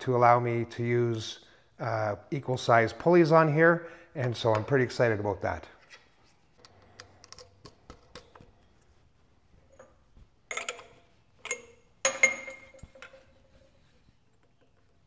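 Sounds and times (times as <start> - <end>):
metal parts clinking: 9.7 - 13.7.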